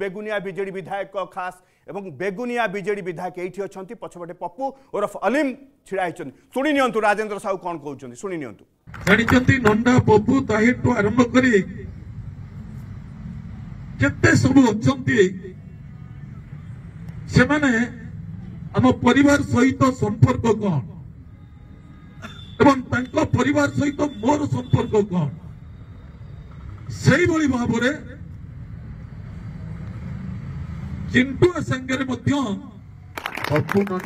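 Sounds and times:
man speaking: 0:00.0 - 0:12.0, 0:14.0 - 0:21.1, 0:22.6 - 0:25.5, 0:26.9 - 0:28.2, 0:31.1 - 0:32.8.

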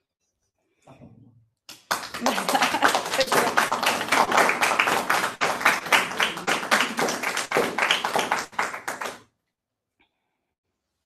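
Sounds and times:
audience applauding: 0:01.7 - 0:09.2.

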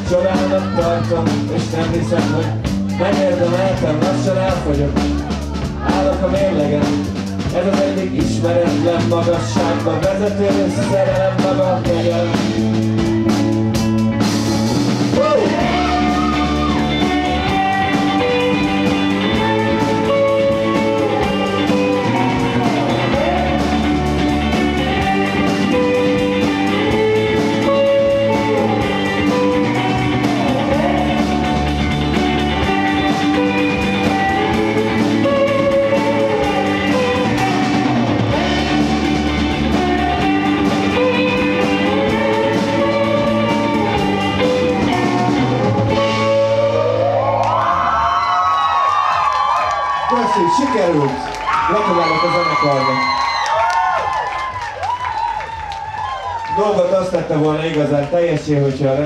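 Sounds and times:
rock band playing: 0:00.0 - 0:58.1.

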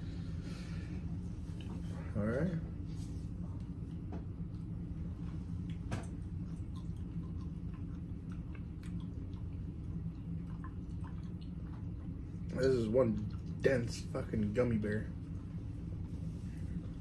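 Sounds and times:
steady low hum: 0:00.0 - 0:17.0
chewing gummy candy: 0:05.6 - 0:14.1.

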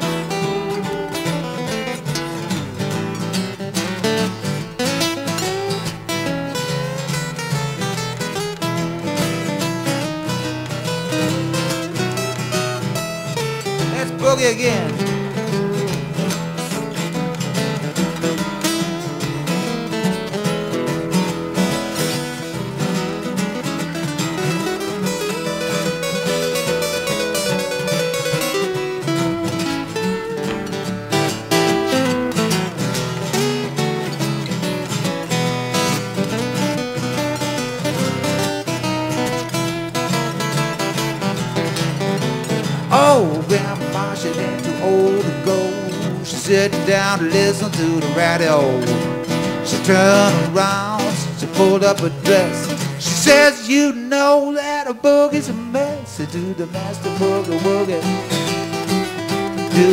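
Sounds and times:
acoustic guitars playing blues: 0:00.0 - 0:59.9.

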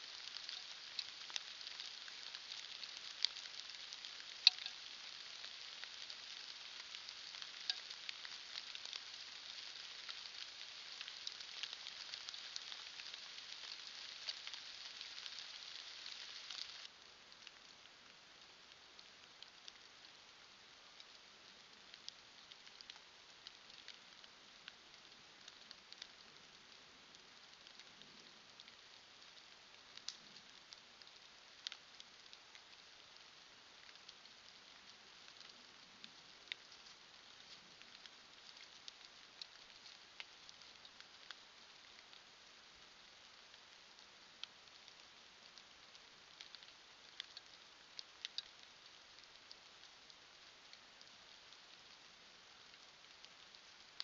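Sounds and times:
light ticks: 0:00.0 - 0:17.7, 0:21.0 - 0:42.3, 0:43.3 - 0:52.0
faint forest ambience hiss: 0:00.0 - 0:54.0
rain dripping on leaves: 0:00.0 - 0:54.0.

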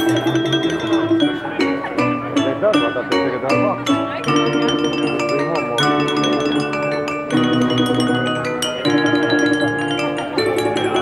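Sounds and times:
glass harp melody: 0:00.0 - 0:11.0.

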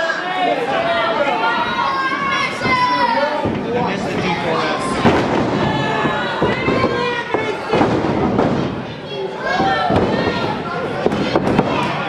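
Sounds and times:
crowd shouting: 0:00.0 - 0:12.0
wrestling ring impacts: 0:00.7 - 0:12.0.

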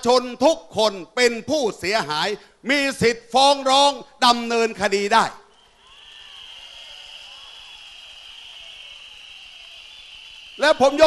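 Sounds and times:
crowd blowing whistles: 0:05.4 - 0:11.0.

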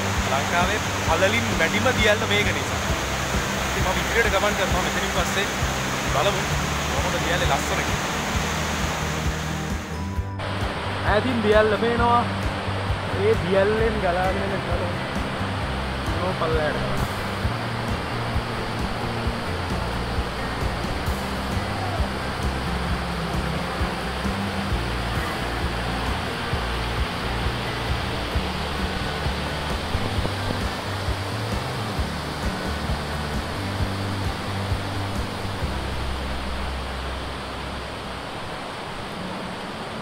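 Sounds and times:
background music with low notes: 0:00.0 - 0:40.0
stream water rushing over rocks: 0:00.0 - 0:40.0.

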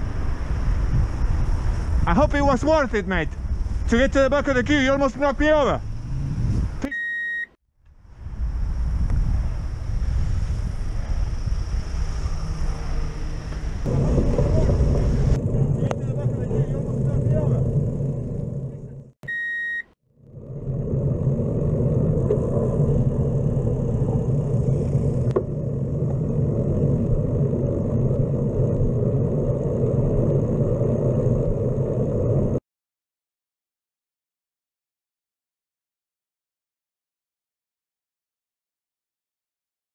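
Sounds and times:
road rumble while cycling: 0:00.0 - 0:32.6
wind: 0:00.0 - 0:32.6
short high beep: 0:06.8 - 0:07.5, 0:19.2 - 0:20.0.

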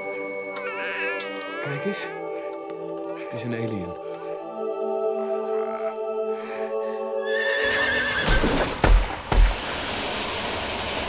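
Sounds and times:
horse whinnying: 0:07.3 - 0:08.6.

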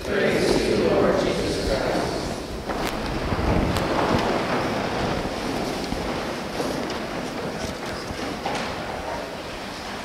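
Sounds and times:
crowd rustling and shuffling: 0:00.0 - 0:10.0.

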